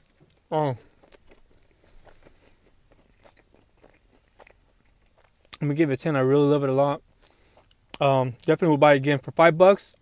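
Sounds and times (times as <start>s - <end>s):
chewing soft bread: 0.0s - 8.6s.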